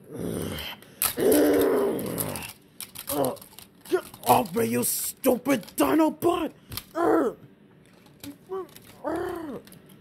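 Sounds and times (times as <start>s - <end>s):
person voicing dinosaur roar: 0.1s - 2.5s, 7.0s - 7.4s, 8.6s - 9.6s.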